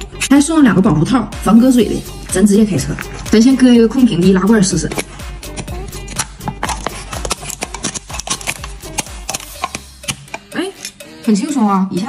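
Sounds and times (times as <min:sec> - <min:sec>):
background music: 0:00.0 - 0:12.0
can opener clicking: 0:05.0 - 0:11.0.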